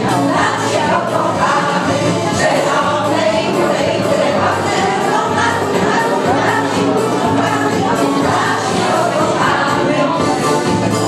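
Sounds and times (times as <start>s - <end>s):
women's group singing: 0.0s - 11.0s.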